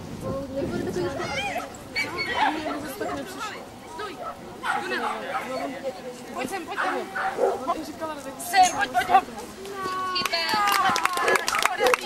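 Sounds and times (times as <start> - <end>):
people's voices: 0.0 - 12.0
dog barking: 4.2 - 5.6, 6.7 - 7.7.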